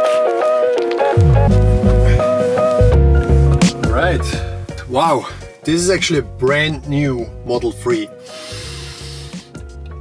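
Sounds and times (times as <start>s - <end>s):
background music: 0.0s - 10.0s
person inhaling deeply: 1.8s - 2.5s, 8.2s - 9.5s.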